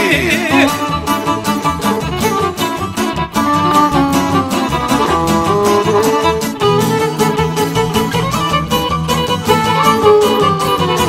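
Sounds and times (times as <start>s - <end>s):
person singing folk song: 0.0s - 6.6s
steady beat: 0.0s - 11.0s
strummed lute: 0.0s - 11.0s
violin: 0.0s - 11.0s.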